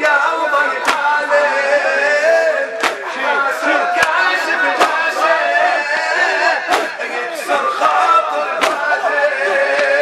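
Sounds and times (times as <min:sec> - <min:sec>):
crowd of men chanting in unison: 0:00.0 - 0:10.0.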